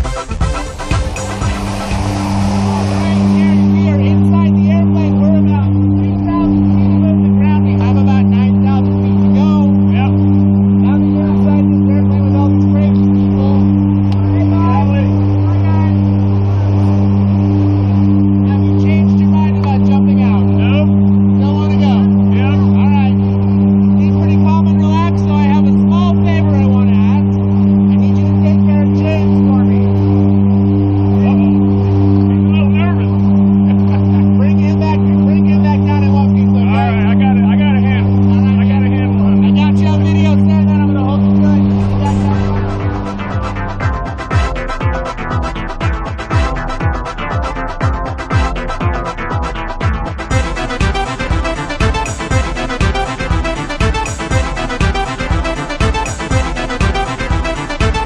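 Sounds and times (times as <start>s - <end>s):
airplane engines droning: 0.3s - 47.8s, 50.2s - 58.0s.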